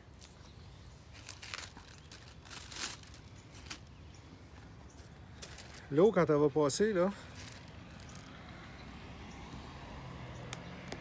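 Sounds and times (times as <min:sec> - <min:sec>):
plastic film crinkling: 0:01.1 - 0:04.0.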